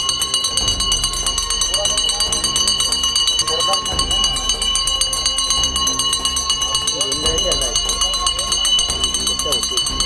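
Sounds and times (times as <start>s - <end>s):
hand bell ringing rapidly: 0.0s - 10.0s.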